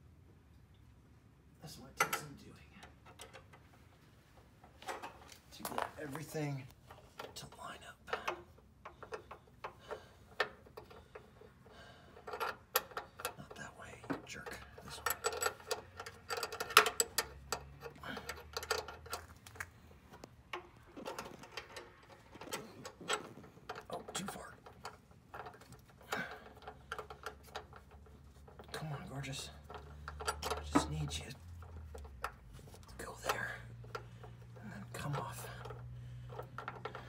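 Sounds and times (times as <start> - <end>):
small metal clicks and taps: 2.0 - 3.8, 8.1 - 28.8, 29.5 - 37.0.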